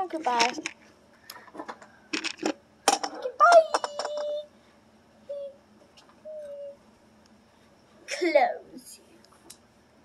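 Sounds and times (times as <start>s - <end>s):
child humming: 6.2s - 6.8s.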